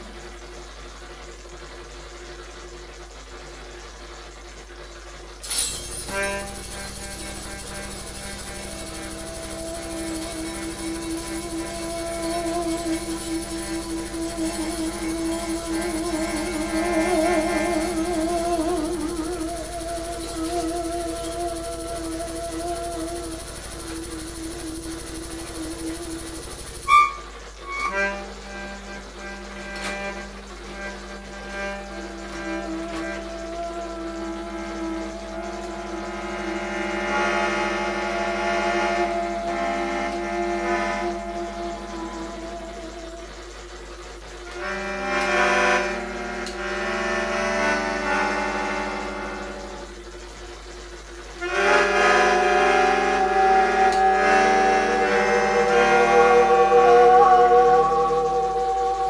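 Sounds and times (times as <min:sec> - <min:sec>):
layered electronic held tones: 0:00.0 - 0:59.0
melodica held notes: 0:05.4 - 0:43.5, 0:44.4 - 0:59.0.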